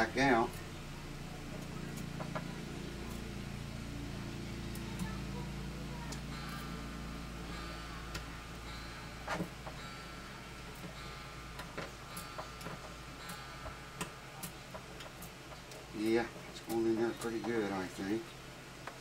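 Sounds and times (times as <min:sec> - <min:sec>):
faint high whine: 0:00.0 - 0:18.7
low room hum: 0:00.0 - 0:19.0.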